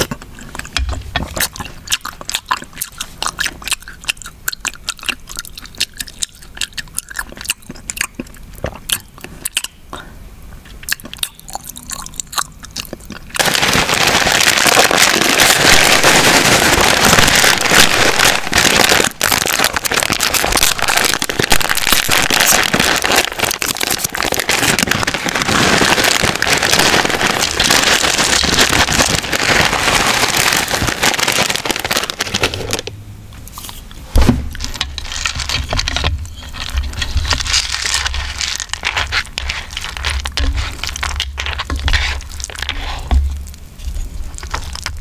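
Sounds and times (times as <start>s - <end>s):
plastic packet crinkling: 10.9s - 33.0s, 34.5s - 45.0s.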